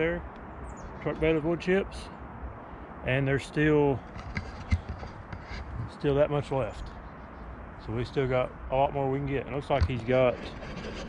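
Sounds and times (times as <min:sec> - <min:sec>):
camera handling noise: 0:04.1 - 0:05.6.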